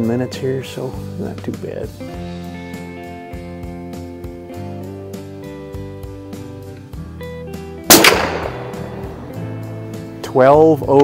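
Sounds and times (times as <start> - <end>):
guitar music: 2.0 - 10.4
rifle shot: 7.9 - 10.1.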